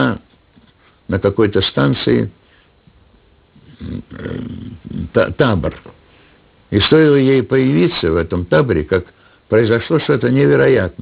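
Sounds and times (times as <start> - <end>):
old man's gravelly voice: 3.6 - 6.0.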